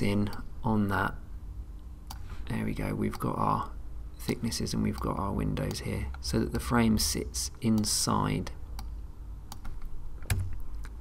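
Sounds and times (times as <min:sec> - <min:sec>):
low steady hum: 0:00.0 - 0:11.0
computer keys clicking: 0:04.8 - 0:06.4, 0:08.8 - 0:11.0.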